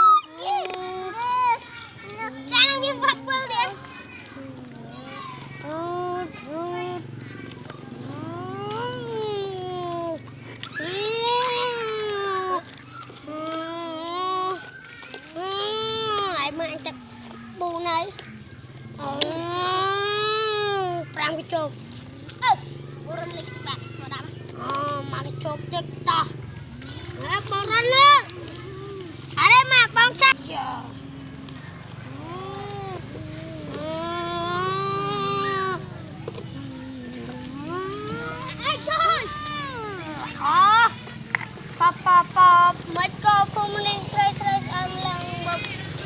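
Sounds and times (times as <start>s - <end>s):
young children calling: 0.0s - 46.0s.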